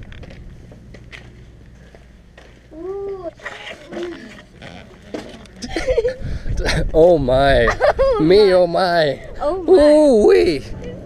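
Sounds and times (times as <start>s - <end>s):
person making wordless call: 2.7s - 5.7s.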